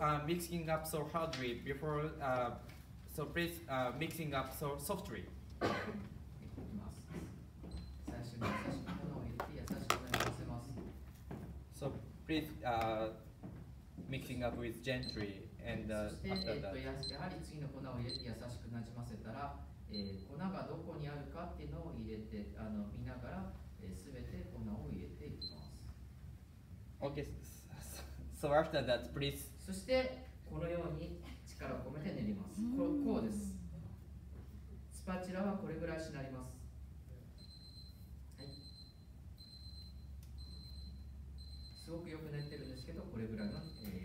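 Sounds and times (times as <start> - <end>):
people talking: 8.1 - 10.8, 31.6 - 33.8
timer alarm beeping: 37.4 - 44.0.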